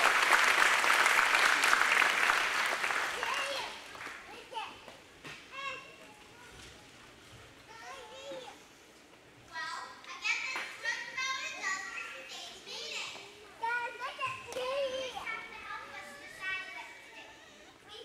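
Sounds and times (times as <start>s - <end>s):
child speaking into a microphone: 3.2s - 4.9s, 5.5s - 7.0s, 7.7s - 8.7s, 9.5s - 18.0s.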